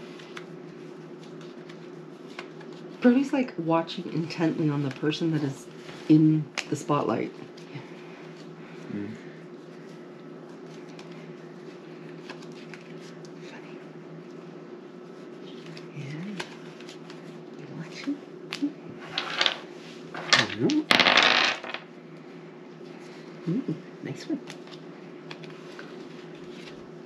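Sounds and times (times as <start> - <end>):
steady low hum: 0.0 - 27.0
dice rattling on table: 19.1 - 21.8
cards and dice clicking: 20.2 - 21.8.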